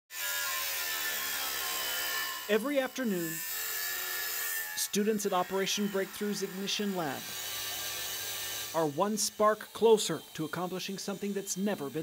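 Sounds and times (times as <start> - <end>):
angle grinder cutting sheet metal: 0.1 - 12.0.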